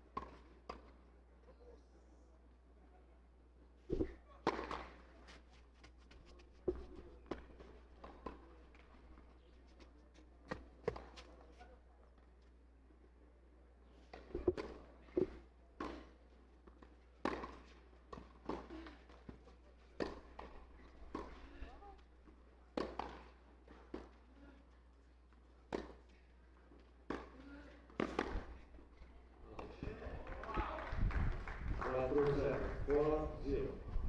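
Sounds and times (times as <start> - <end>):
tennis ball bouncing: 14.1 - 18.7, 20.0 - 21.6, 22.7 - 24.2, 25.7 - 26.1, 27.1 - 28.5
tennis ball struck by rackets: 17.2 - 18.7, 20.0 - 21.4, 22.8 - 24.2, 27.1 - 28.5.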